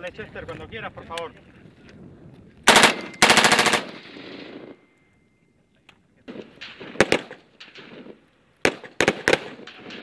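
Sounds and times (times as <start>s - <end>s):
automatic rifle bursts: 2.7s - 4.0s.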